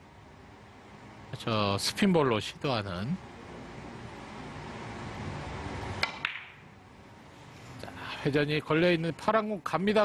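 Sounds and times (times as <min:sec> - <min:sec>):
billiard balls clicking: 0:06.0 - 0:06.6.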